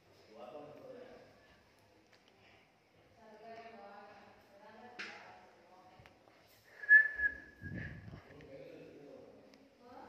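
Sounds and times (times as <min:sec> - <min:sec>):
high whistle-like tone: 0:06.8 - 0:08.0.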